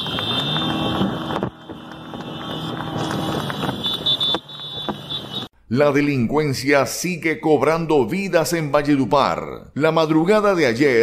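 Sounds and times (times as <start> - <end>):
vehicle engines in traffic: 0.0 - 5.6.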